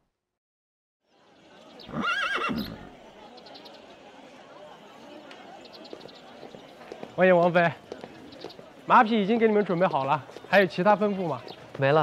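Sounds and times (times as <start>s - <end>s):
low outdoor background: 1.0s - 12.0s
horse whinnying: 1.9s - 2.9s.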